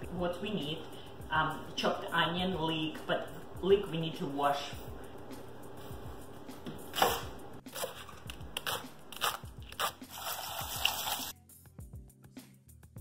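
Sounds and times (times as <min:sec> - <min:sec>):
background music: 0:00.0 - 0:13.0
knife cutting leek on wooden board: 0:06.9 - 0:10.0.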